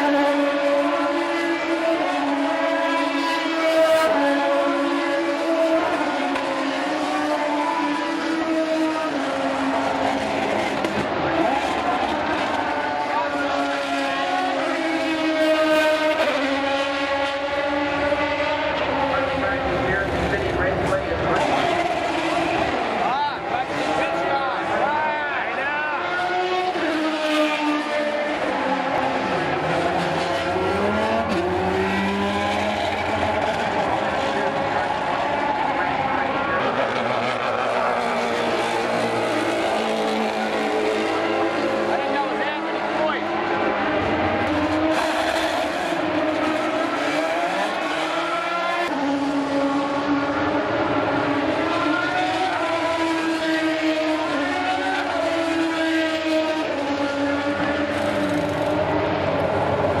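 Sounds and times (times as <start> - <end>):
race car engines at high revs: 0.0 - 60.0.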